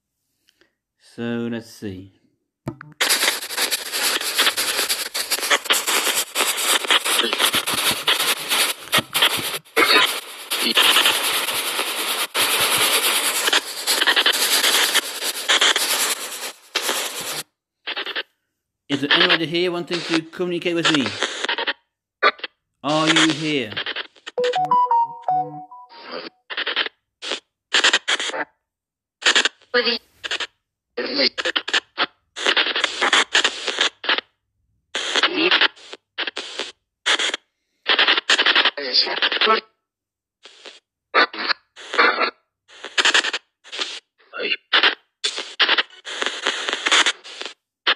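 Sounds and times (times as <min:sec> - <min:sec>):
short blip: 0:02.7 - 0:03.0
chopped radio static hiss: 0:02.7 - 0:18.3, 0:18.9 - 0:21.7, 0:22.9 - 0:24.4, 0:31.1 - 0:34.3, 0:40.4 - 0:47.9
chopped voice fragments: 0:06.4 - 0:14.8, 0:18.9 - 0:21.2, 0:22.8 - 0:26.2.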